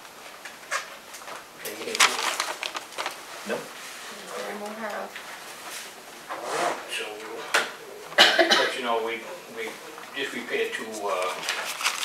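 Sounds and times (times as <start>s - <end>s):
people talking: 1.6s - 2.3s, 3.4s - 5.1s, 6.9s - 11.5s.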